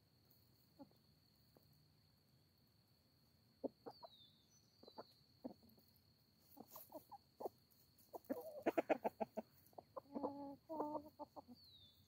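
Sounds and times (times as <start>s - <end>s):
hens clucking: 4.8s - 11.8s.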